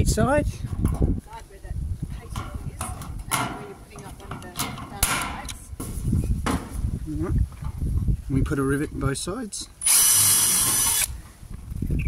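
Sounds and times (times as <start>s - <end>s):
metal knocks and clicks: 2.3s - 6.7s.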